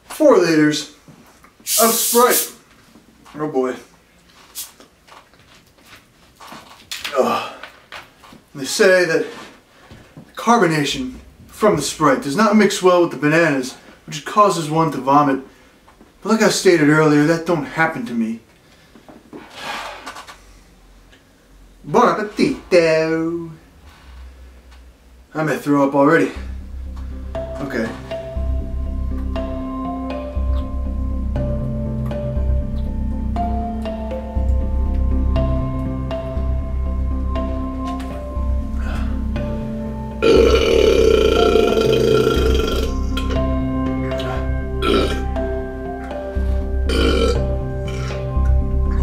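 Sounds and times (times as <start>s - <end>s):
background music: 26.4s - 49.0s
man burping: 40.2s - 43.5s, 44.1s - 45.3s, 46.9s - 48.2s.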